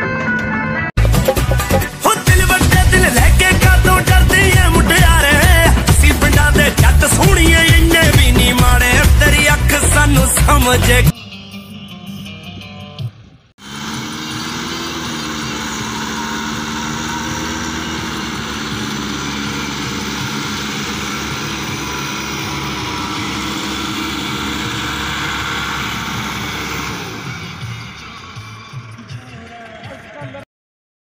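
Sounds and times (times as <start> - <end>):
tractor diesel engine running: 1.0 - 11.1, 12.3 - 30.4.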